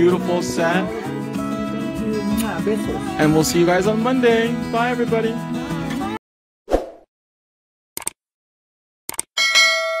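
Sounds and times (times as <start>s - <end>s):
quick clicks: 8.0s - 8.2s, 9.1s - 9.3s
notification bell ringing: 9.4s - 10.0s.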